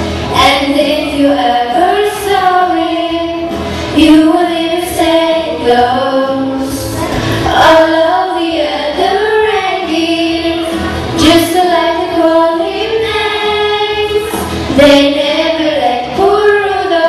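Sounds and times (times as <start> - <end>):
girls singing into microphones: 0.0 - 17.0.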